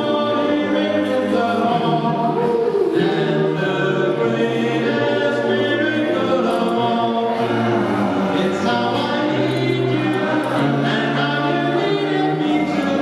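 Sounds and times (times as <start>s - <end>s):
men singing in harmony: 0.0s - 13.0s.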